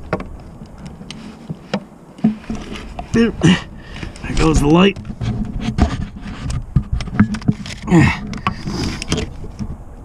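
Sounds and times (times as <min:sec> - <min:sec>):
tools knocking and scraping metal: 0:04.4 - 0:09.3.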